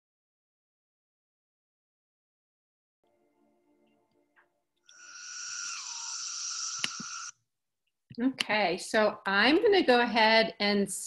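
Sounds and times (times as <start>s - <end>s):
buzzing chorus of cicadas: 4.9s - 7.3s.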